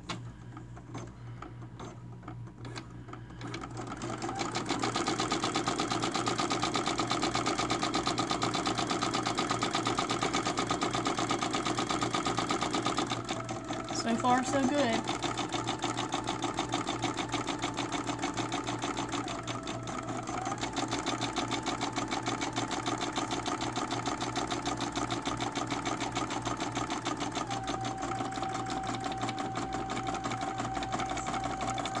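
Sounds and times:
embroidery machine needle stitching: 0:02.6 - 0:32.0.

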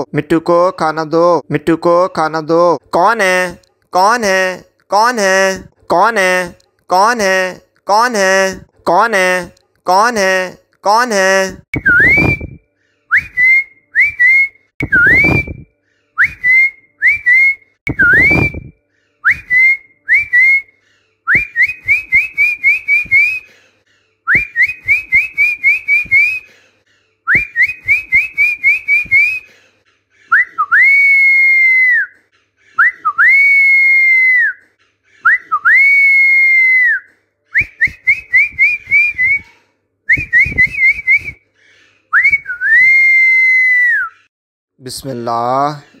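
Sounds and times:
quick rising whistles: 0:11.8 - 0:12.6, 0:13.2 - 0:20.7.

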